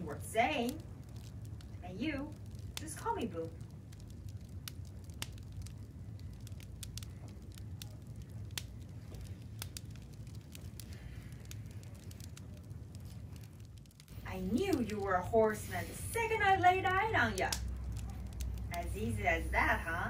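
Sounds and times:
faint clicks and crackles: 0:00.0 - 0:20.0
steady low hum: 0:00.0 - 0:20.0.

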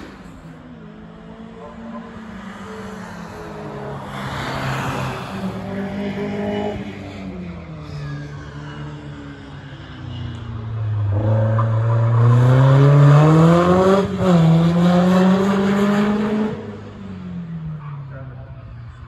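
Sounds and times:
racing car engine accelerating: 0:10.9 - 0:17.1.

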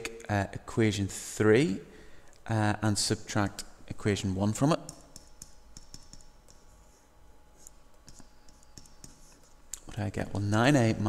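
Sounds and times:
low steady hum: 0:00.0 - 0:11.0
stylus tapping on pen tablet: 0:04.9 - 0:06.7, 0:08.0 - 0:09.5.

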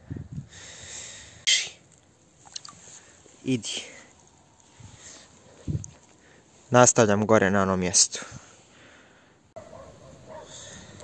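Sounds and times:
fish splashing in water: 0:01.8 - 0:03.4.

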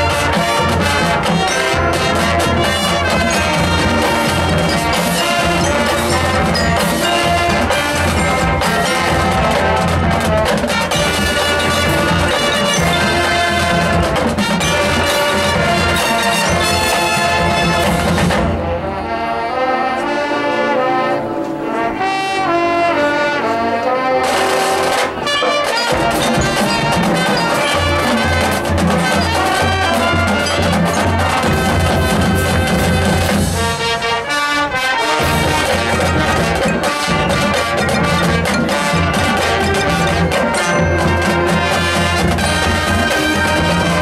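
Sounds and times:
brass section playing chords: 0:00.0 - 0:44.0.

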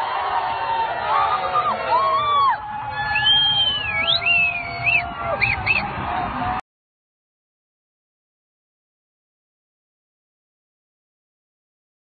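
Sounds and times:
crowd noise: 0:00.0 - 0:06.6
high-pitched whistles: 0:03.0 - 0:05.8.

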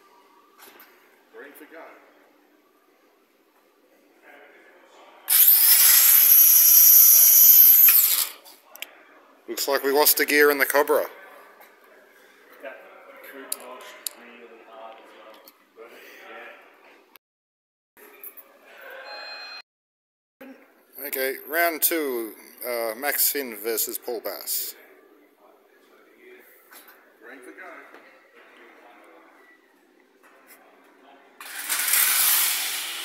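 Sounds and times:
faint room noise: 0:00.0 - 0:05.3, 0:08.2 - 0:17.2, 0:20.4 - 0:31.5
electric motors whining: 0:05.3 - 0:08.2.

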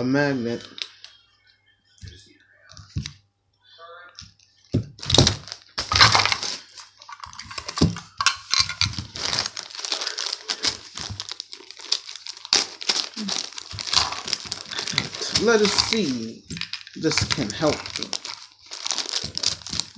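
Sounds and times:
plastic toy pieces clattering: 0:05.4 - 0:19.9.

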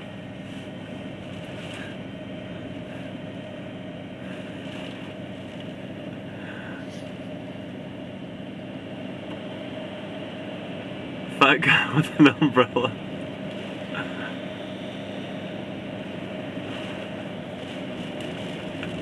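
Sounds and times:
truck engine idling hum: 0:00.0 - 0:19.0
hurricane wind and rain: 0:13.2 - 0:19.0.

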